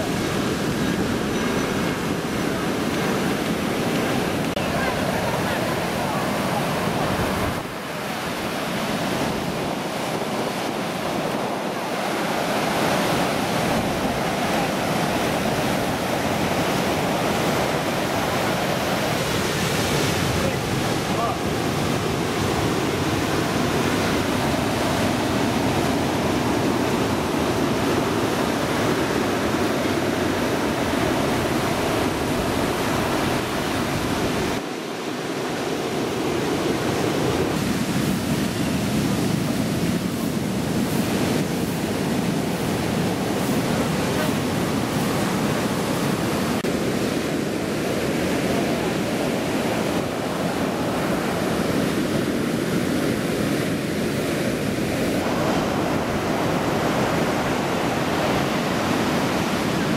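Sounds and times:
storm surf breaking on beach: 0.0s - 59.9s.

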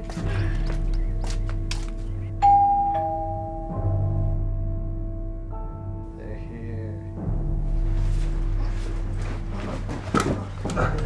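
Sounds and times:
background music: 0.0s - 11.0s
two-tone doorbell chime: 2.4s - 4.3s.

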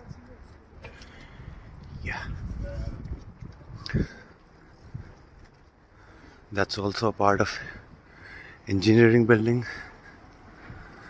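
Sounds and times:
faint voices of passers-by: 0.0s - 11.0s.

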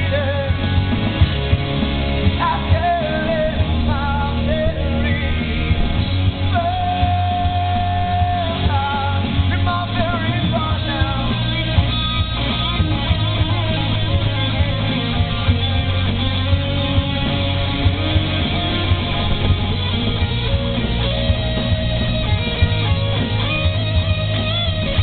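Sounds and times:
electric guitar lead notes: 0.0s - 25.0s
rock band playing live: 0.0s - 25.0s
steady low bass: 0.0s - 25.0s.

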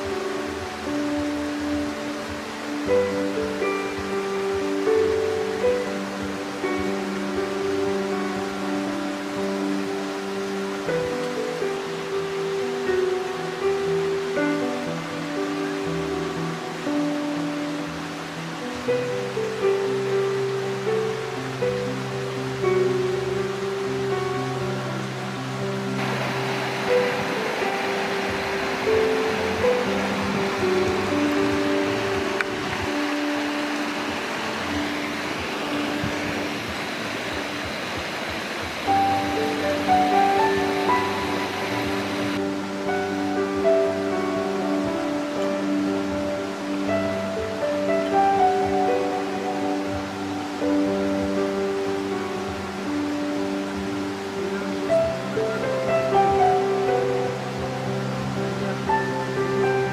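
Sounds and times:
melody of held notes: 0.0s - 59.9s
steady hiss: 0.0s - 59.9s.

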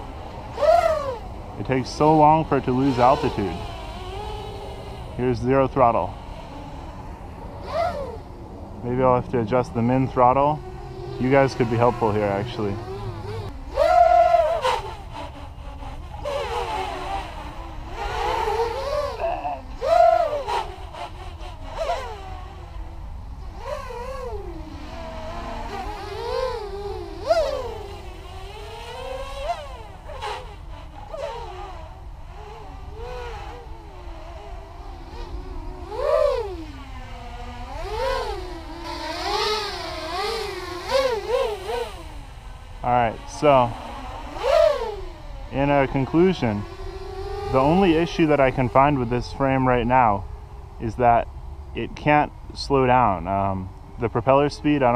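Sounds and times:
quadcopter motors buzzing: 0.0s - 54.9s.

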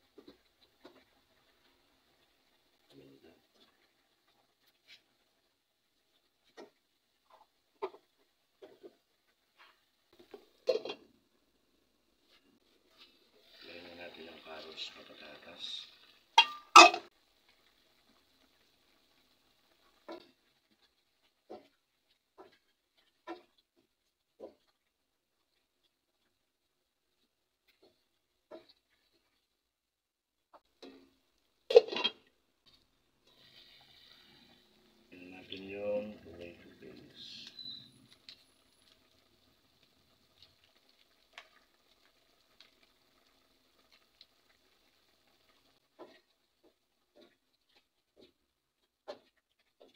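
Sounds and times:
vegetables clattering into a pot: 9.6s - 11.2s, 16.4s - 17.1s, 30.7s - 32.3s
spoon knocking against a pot: 16.4s - 17.0s.

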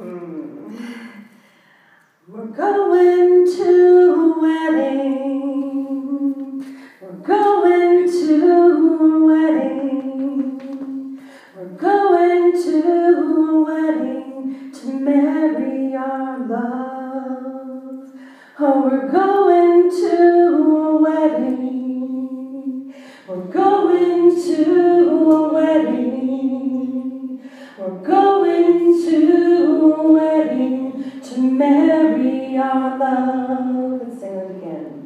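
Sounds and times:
woman singing unaccompanied: 2.3s - 34.6s.

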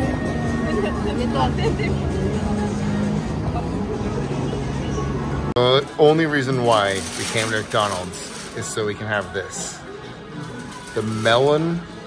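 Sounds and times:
road traffic hum: 0.0s - 10.8s
crowd babble: 0.0s - 12.0s.

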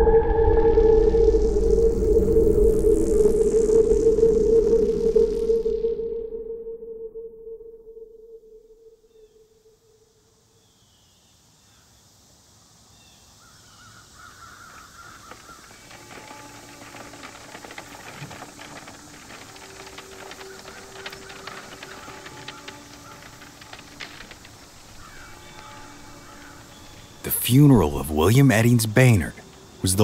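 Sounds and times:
held low musical tones: 0.0s - 9.1s, 15.8s - 30.0s
bird calls: 13.0s - 30.0s
scattered clicks and crackles: 14.7s - 30.0s.

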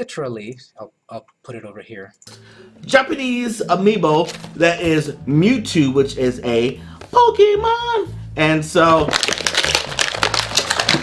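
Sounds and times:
plastic packaging crackling: 8.9s - 11.0s.

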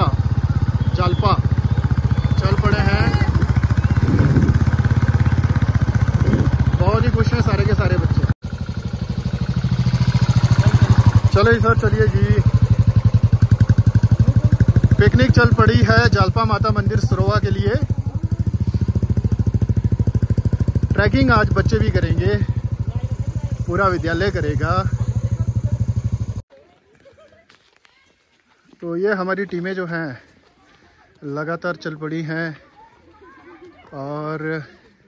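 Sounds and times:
motorcycle engine running: 0.0s - 26.4s.

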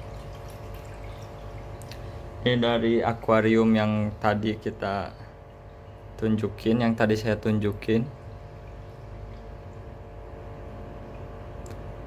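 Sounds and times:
faint steady hum: 0.0s - 12.0s
water running from hose into tank: 0.0s - 12.0s.

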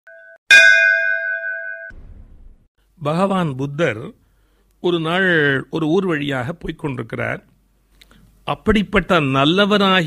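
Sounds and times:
bell-like strike ringing: 0.1s - 2.3s.

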